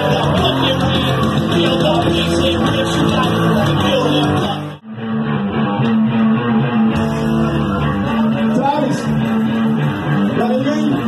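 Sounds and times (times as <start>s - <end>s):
nu-metal band playing loudly: 0.0s - 11.0s.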